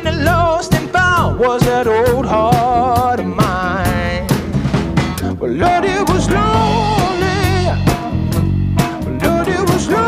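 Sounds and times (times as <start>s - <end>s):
rock song with singing: 0.0s - 10.0s.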